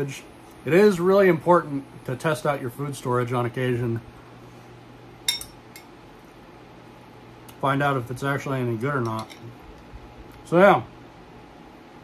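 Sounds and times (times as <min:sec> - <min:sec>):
utensil clinking against bowl: 0:05.3 - 0:05.9, 0:09.0 - 0:09.5.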